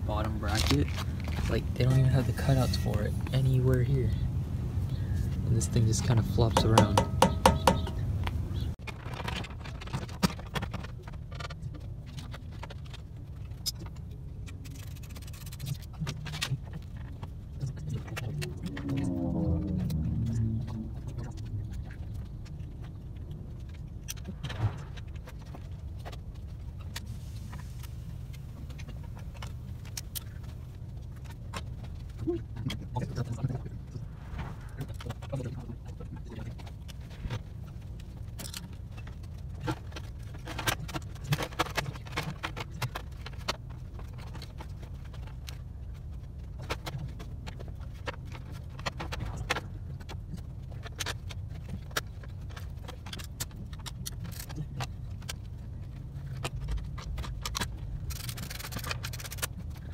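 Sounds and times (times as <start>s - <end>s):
steady low hum: 0.0s - 8.8s.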